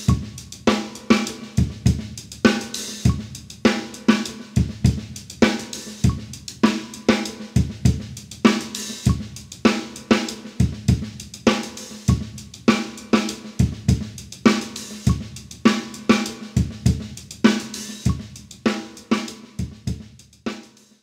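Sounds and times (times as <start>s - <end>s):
bass drum: 0.0s - 12.9s, 13.5s - 20.2s
hi-hat strokes: 0.0s - 21.0s
snare drum: 0.0s - 21.0s.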